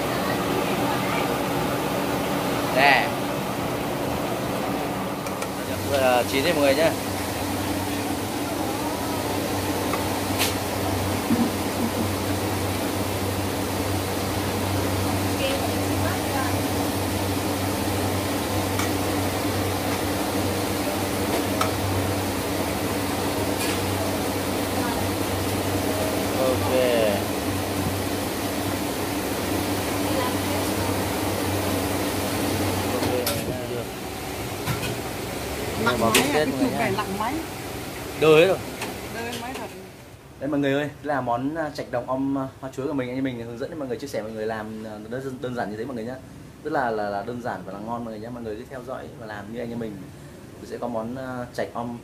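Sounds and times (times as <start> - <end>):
low machine hum: 0.0 - 40.9.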